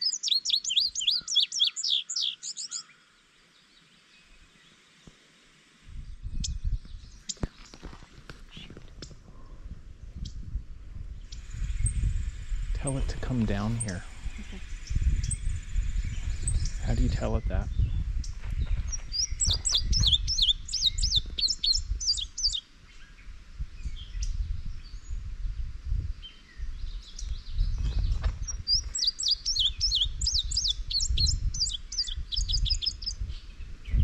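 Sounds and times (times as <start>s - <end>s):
songbird singing: 0.0s - 10.5s, 11.1s - 34.0s.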